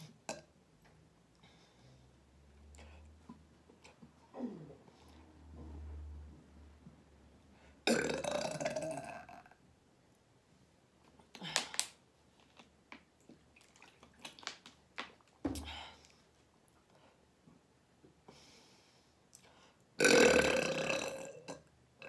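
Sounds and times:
woman burping: 7.8s - 9.5s, 20.0s - 21.7s.

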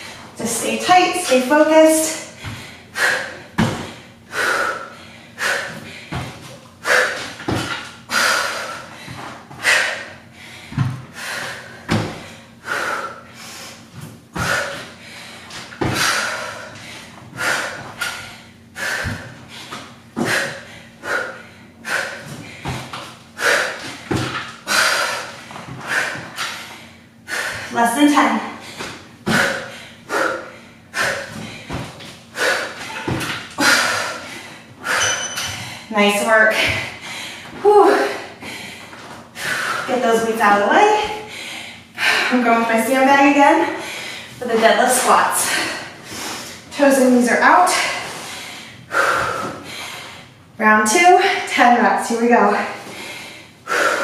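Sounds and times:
woman breathing hard: 2.0s - 40.0s, 40.8s - 42.6s, 43.4s - 46.8s, 47.7s - 50.4s, 52.5s - 54.0s
woman grunting: 37.6s - 38.3s.

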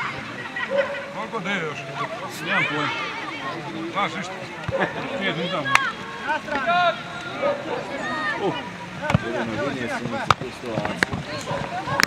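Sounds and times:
people shouting and calling out: 0.0s - 12.0s.

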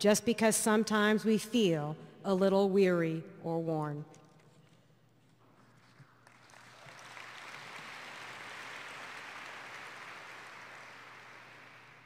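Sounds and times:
audience applauding: 6.2s - 12.0s.

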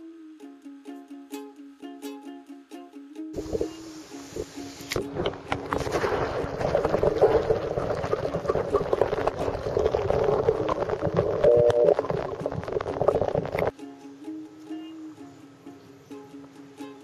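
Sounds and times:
ukulele music: 0.0s - 17.0s
water rushing and bubbling: 3.4s - 13.7s.

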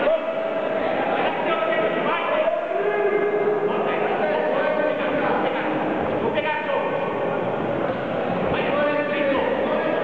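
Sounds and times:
people calling out: 0.0s - 4.6s
sports hall background noise: 0.0s - 10.0s.

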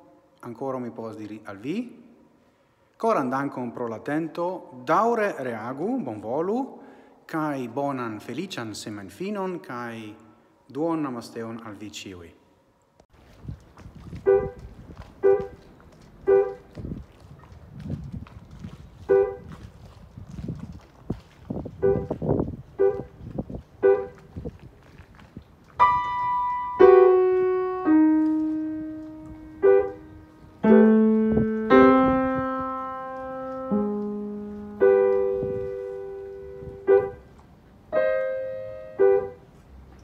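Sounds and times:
piano music: 15.2s - 15.6s, 16.2s - 16.6s, 22.8s - 23.1s, 23.8s - 24.2s, 25.8s - 37.3s, 37.9s - 39.5s.

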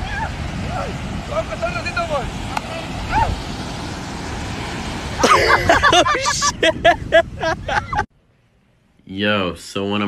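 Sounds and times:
beach surf: 0.0s - 8.1s
wind rumbling on microphone: 0.0s - 8.1s.

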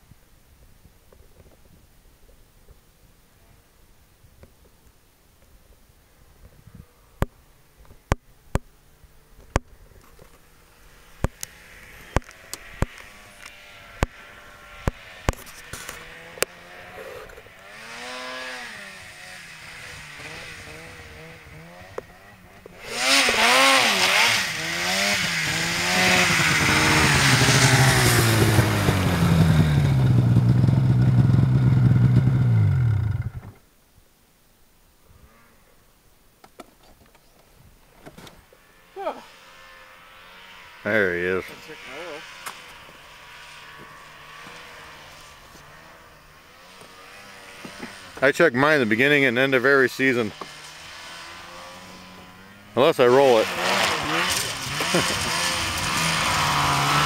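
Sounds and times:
snowmobile engine: 10.1s - 33.6s, 38.4s - 57.0s.

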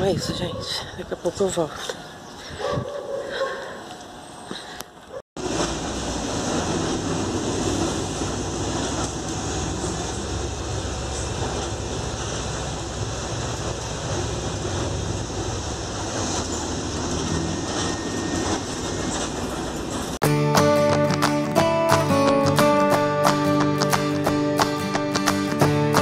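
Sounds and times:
bus engine and road rumble: 3.8s - 20.2s.

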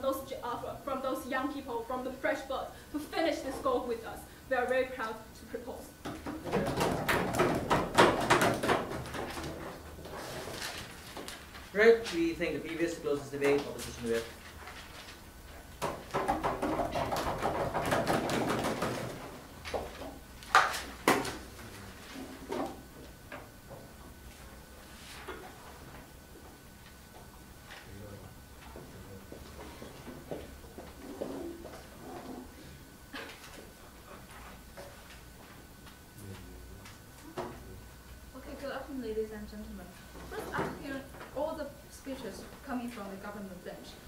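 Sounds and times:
low room hum: 0.0s - 44.0s.

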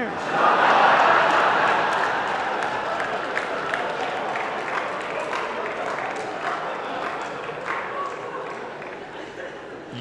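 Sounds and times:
audience applauding: 0.8s - 9.0s.

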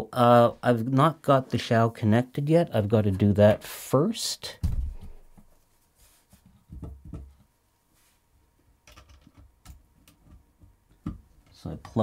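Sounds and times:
soft bump: 4.6s - 5.5s.

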